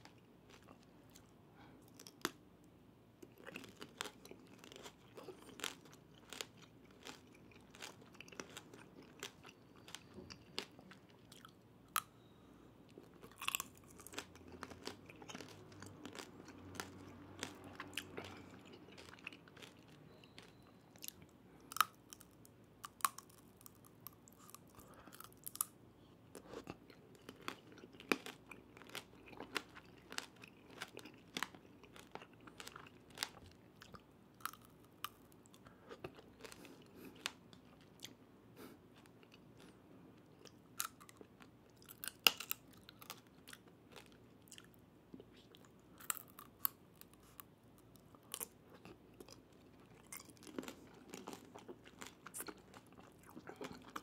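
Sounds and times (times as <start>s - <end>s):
soft chewing: 0.0s - 2.4s, 3.2s - 54.0s
hard candy crunching: 3.2s - 11.5s, 13.0s - 25.7s, 26.3s - 35.2s, 45.6s - 54.0s.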